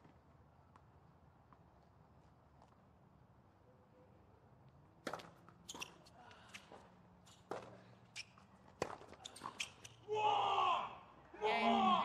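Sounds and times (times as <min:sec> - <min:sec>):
shoe squeaks: 0:05.6 - 0:07.5, 0:08.1 - 0:08.5, 0:09.2 - 0:10.0.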